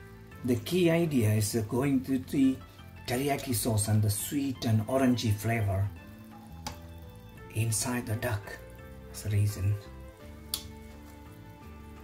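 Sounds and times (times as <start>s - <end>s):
soft background music: 0.0s - 12.0s
sharp click: 10.5s - 10.8s.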